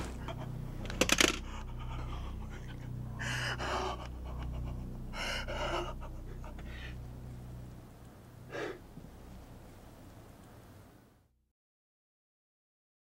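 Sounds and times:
steady low hum: 0.0 - 11.3
man panting and gasping: 1.4 - 7.1.

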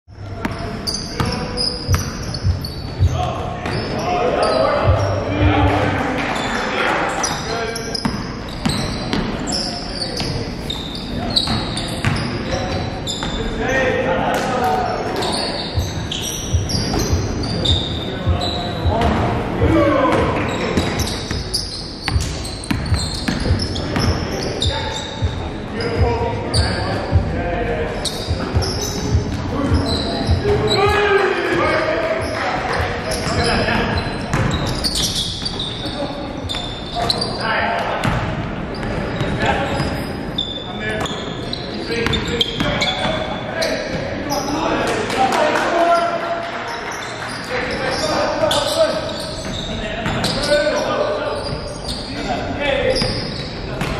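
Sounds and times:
sneakers squeaking: 0.1 - 45.0, 45.6 - 53.9
players calling out: 0.2 - 38.2.

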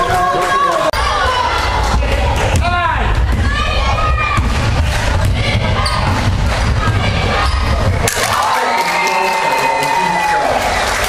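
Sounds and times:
crowd hum: 0.8 - 11.0.

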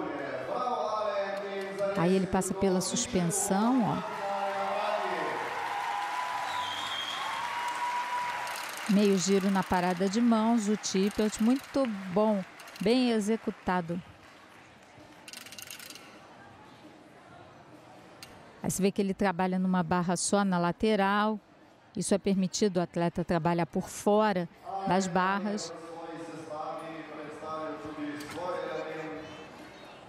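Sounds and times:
faint arena background: 0.0 - 30.0.

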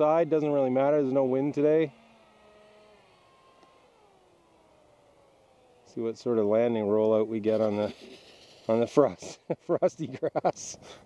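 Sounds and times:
model jet motor whine: 0.0 - 9.3.

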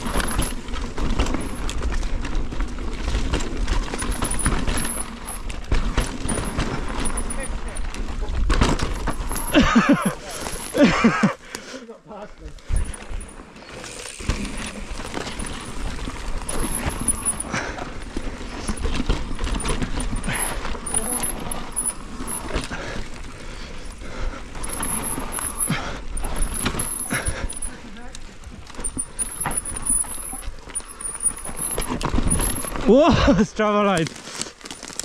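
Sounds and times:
bike frame clattering: 0.0 - 11.3, 12.7 - 33.1
bike tyres on dirt: 0.0 - 35.0.

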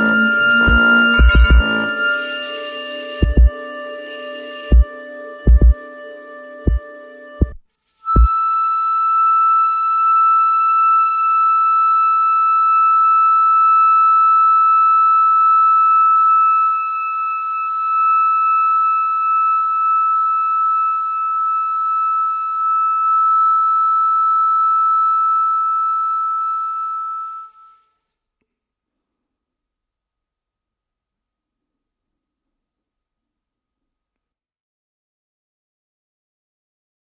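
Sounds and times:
flute holding high note: 0.0 - 6.6, 8.0 - 28.0.

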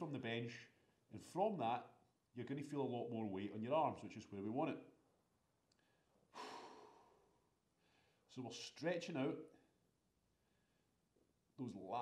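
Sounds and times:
man exhaling breathily: 6.3 - 8.1.

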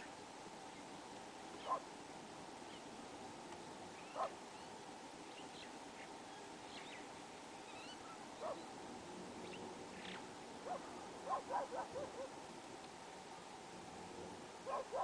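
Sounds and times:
dog barking: 1.6 - 1.9, 4.2 - 4.4, 8.4 - 8.6, 10.6 - 12.3, 14.6 - 15.0.

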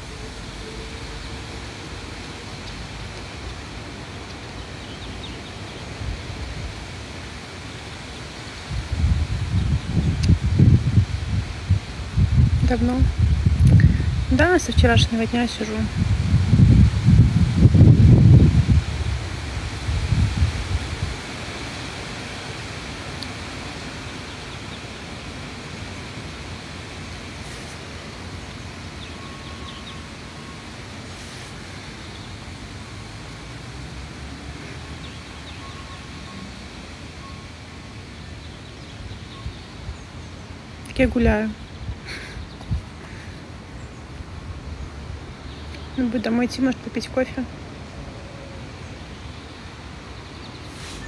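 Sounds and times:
outdoor background hiss: 0.0 - 51.0
wind buffeting microphone: 8.4 - 31.6, 38.4 - 46.5.

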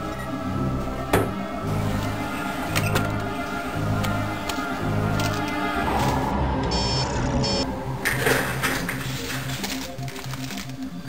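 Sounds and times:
low music: 0.0 - 11.0
high electronic beeping: 6.7 - 7.7.

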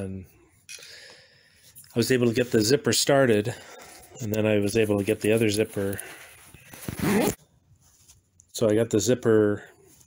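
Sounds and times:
zipper pulled: 6.6 - 7.4.

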